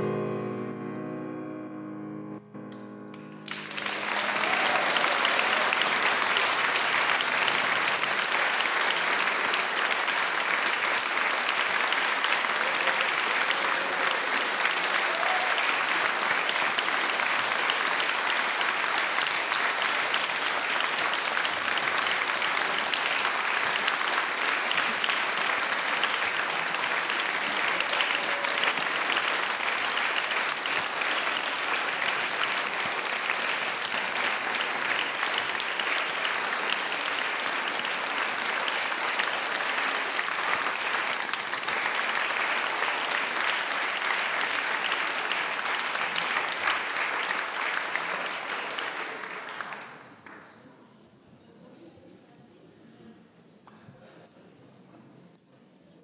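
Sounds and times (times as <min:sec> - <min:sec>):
audience applauding: 0:02.7 - 0:50.7.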